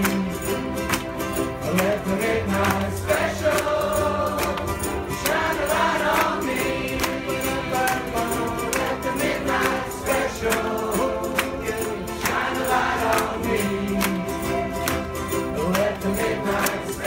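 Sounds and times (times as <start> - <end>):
many voices singing together: 0.0 - 17.0
ukuleles strummed: 0.0 - 17.0.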